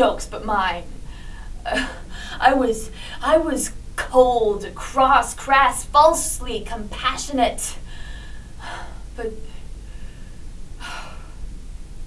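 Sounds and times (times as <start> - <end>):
woman breathing: 1.0 - 3.2, 7.8 - 11.5.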